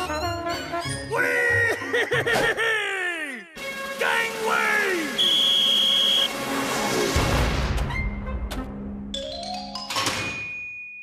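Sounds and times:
shrill whistle blast: 5.1 - 6.4.

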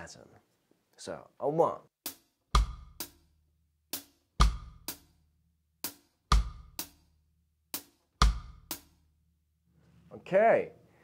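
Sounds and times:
bass drum: 2.0 - 9.1.

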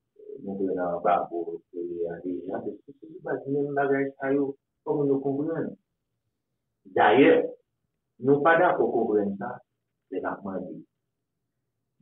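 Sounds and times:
man speaking: 0.2 - 5.8, 6.9 - 7.6, 8.2 - 10.8.

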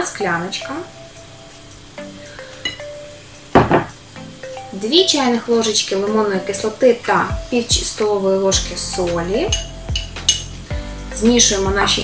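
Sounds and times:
soft background music: 0.0 - 12.0
glass knocking on table: 3.6 - 4.0
spoon and glass clinking on bowl: 9.5 - 10.5.

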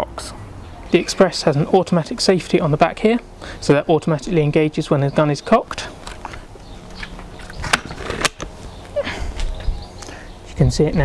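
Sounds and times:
air rifle mechanism clicks: 6.0 - 8.6.

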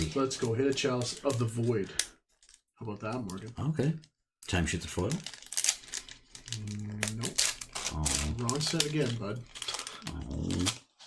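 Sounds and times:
foil wrapper crinkling and tearing: 0.0 - 11.0.

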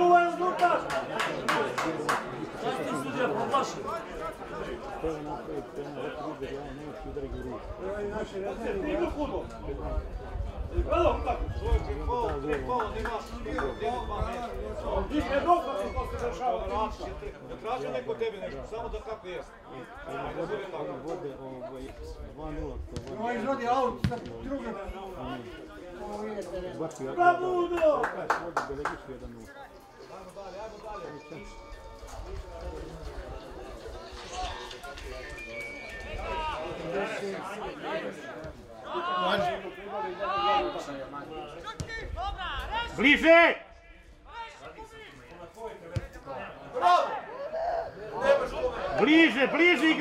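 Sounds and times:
men talking indistinctly: 0.0 - 50.0
players and onlookers shouting: 36.1 - 45.2, 46.4 - 50.0.

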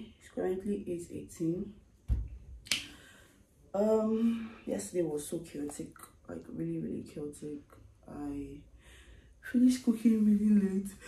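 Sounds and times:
woman speaking softly: 0.0 - 1.8, 3.8 - 8.6, 9.4 - 11.0
low thud: 2.1 - 2.4.

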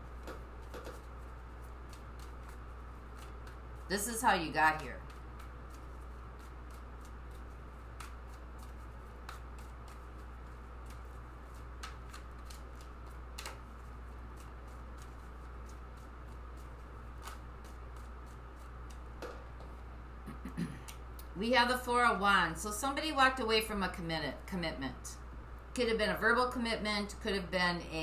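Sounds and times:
cards being shuffled: 0.0 - 19.9.

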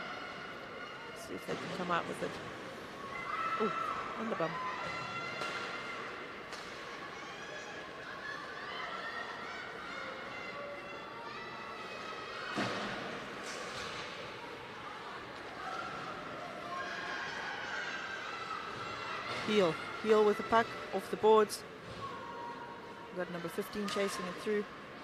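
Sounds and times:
shouts echoing in an arena: 0.0 - 25.0.

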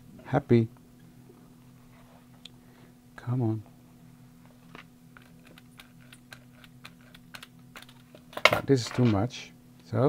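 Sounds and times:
low steady hum: 0.0 - 10.0
brayer clicking and rolling: 4.7 - 9.0.

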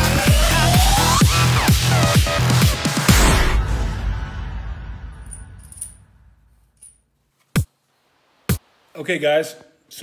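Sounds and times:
light metallic clinks of screw: 5.3 - 6.0, 6.8 - 7.0.

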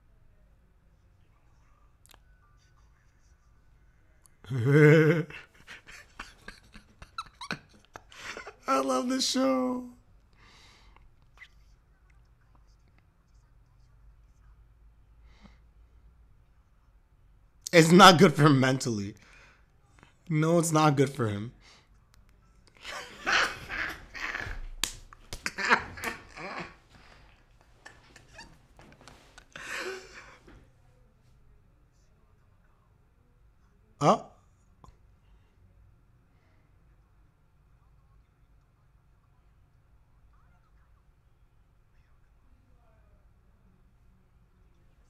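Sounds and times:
man laughing breathily: 4.5 - 8.8, 22.8 - 24.7, 25.4 - 27.3, 29.4 - 30.5.

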